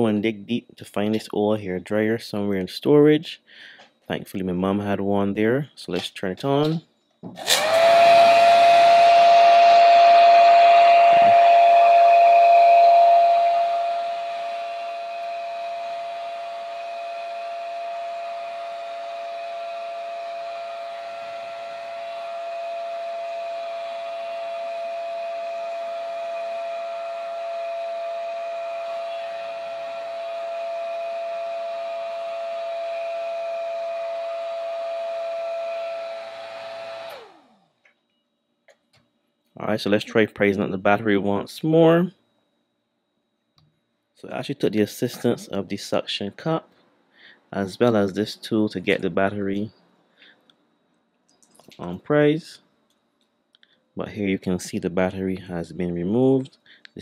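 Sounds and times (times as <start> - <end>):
hair dryer motor whine: 7.3 - 37.7.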